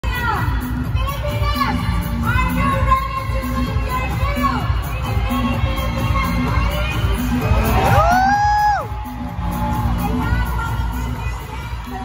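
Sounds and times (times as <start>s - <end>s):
music with pulsing bass: 0.0s - 12.0s
audience shouting and cheering: 0.1s - 12.0s.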